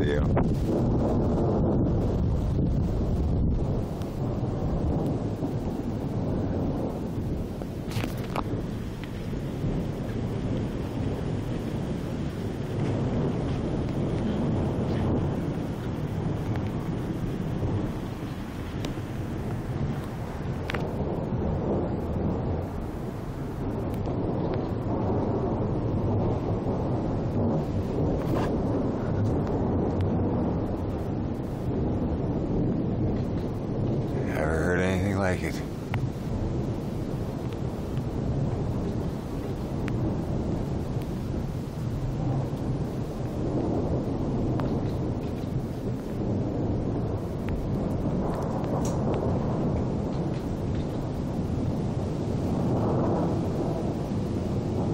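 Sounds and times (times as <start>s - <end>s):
thunder rumbling: 0.0s - 54.9s
faint clicks: 48.3s - 49.2s.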